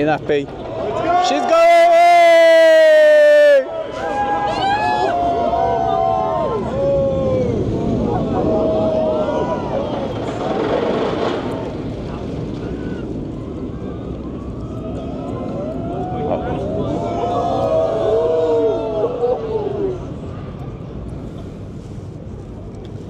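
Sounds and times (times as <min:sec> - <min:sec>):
crowd cheering and whooping: 0:00.6 - 0:10.7, 0:12.6 - 0:20.3.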